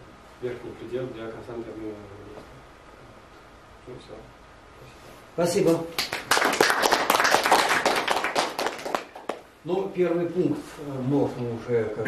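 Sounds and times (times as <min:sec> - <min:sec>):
audience applauding: 0:06.0 - 0:09.4.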